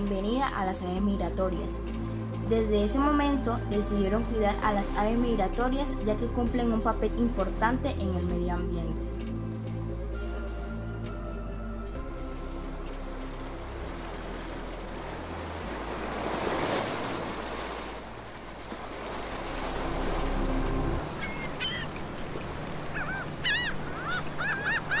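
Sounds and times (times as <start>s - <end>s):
soft music with low notes: 0.0s - 25.0s
surf-like washes: 12.3s - 25.0s
birds calling: 18.7s - 25.0s.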